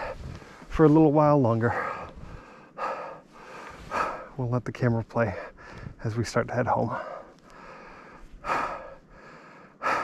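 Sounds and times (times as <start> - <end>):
man breathing hard: 0.0 - 0.7, 1.7 - 4.4, 5.3 - 6.0, 6.9 - 10.0.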